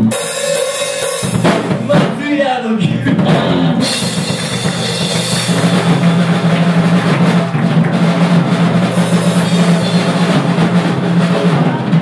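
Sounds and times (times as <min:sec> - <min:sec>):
electric guitars and bass: 0:00.0 - 0:00.4, 0:01.2 - 0:12.0
bass drum and snare: 0:00.0 - 0:12.0
live rock band playing: 0:00.0 - 0:12.0.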